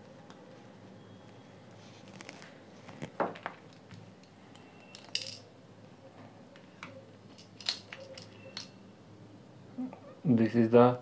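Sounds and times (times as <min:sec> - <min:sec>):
plastic parts clicking: 0:07.3 - 0:08.7.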